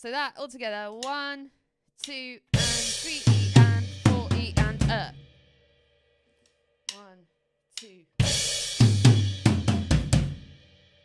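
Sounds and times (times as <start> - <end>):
person counting: 0.2 - 5.1, 6.9 - 8.2
drum kit strokes ringing: 2.6 - 5.1, 8.2 - 10.7
person saying uh: 6.9 - 7.2.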